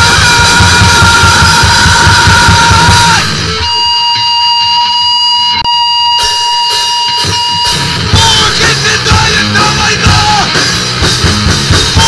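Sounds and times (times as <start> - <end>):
piercing high tone: 0.0 - 8.6
distorted band noise: 0.0 - 12.0.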